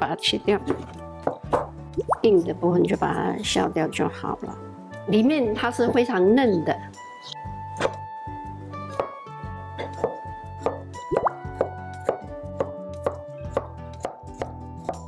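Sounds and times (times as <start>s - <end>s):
background music: 0.0s - 15.0s
knife chopping on wooden board: 7.8s - 8.0s, 8.9s - 9.2s, 9.8s - 15.0s.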